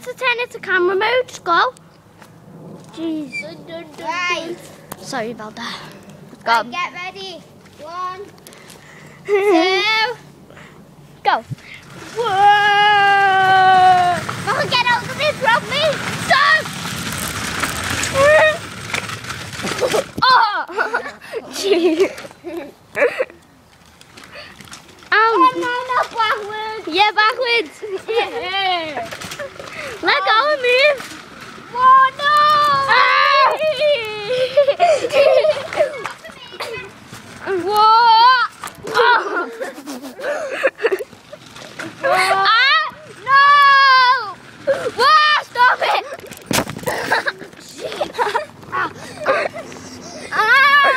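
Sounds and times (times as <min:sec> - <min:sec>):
shopping trolley rattling: 0:11.7 - 0:20.4, 0:24.2 - 0:50.9
children yelling: 0:11.9 - 0:16.9, 0:17.8 - 0:18.8, 0:19.6 - 0:21.6, 0:25.2 - 0:40.7, 0:41.6 - 0:50.9
child crying: 0:12.2 - 0:14.2, 0:48.3 - 0:50.9.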